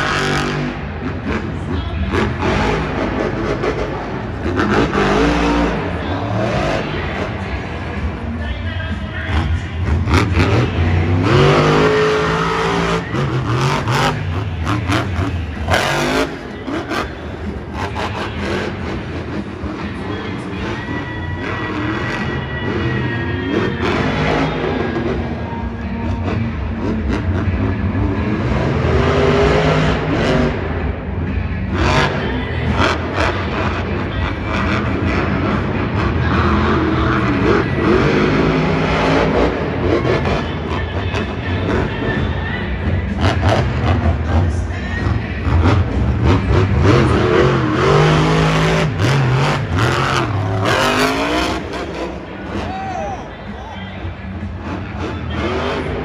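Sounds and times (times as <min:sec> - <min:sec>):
monster truck engine revving: 0:00.0 - 0:56.0.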